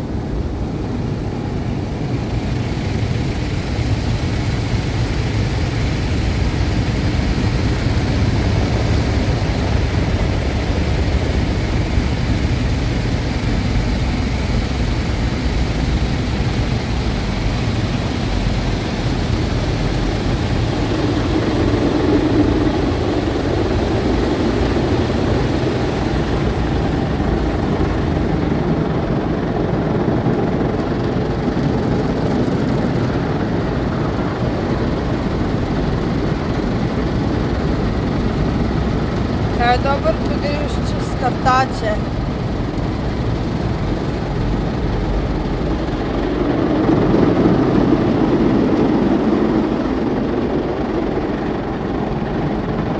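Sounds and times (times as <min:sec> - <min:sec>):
water spraying on car: 0:01.6 - 0:28.2.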